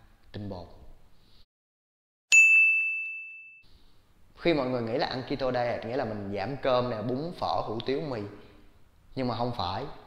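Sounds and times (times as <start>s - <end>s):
bright ding: 2.3s - 3.6s.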